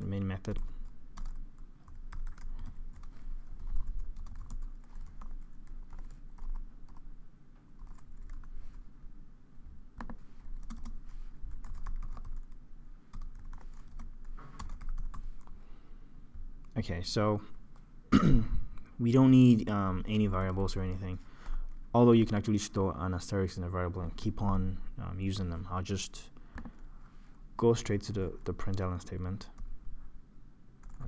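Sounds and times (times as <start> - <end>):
low steady hum: 0.0 - 31.0.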